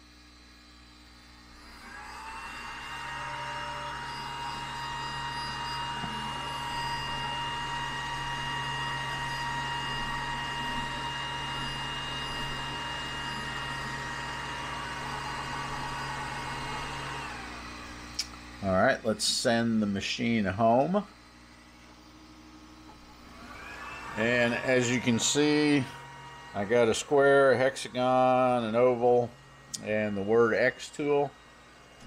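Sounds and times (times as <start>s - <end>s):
laser engraver whine and hum: 0.0s - 32.0s.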